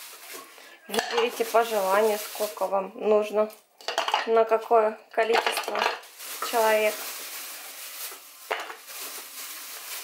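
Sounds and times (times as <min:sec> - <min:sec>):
plastic bag rustling and crinkling: 0:00.0 - 0:03.5, 0:05.3 - 0:10.0.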